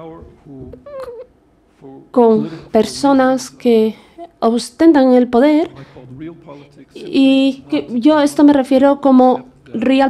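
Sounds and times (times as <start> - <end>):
interpreter speaking: 5.0 - 10.0.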